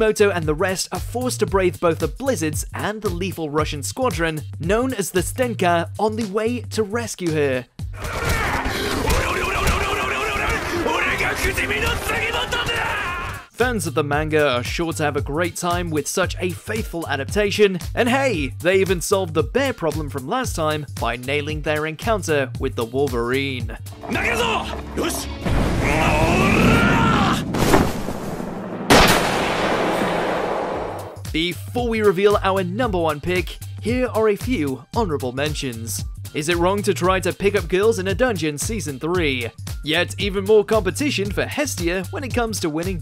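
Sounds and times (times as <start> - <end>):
men yelling and shouting: 8.0 - 13.5, 23.9 - 27.5
low rumble: 24.7 - 31.2
rifle shot with echo: 27.6 - 31.0.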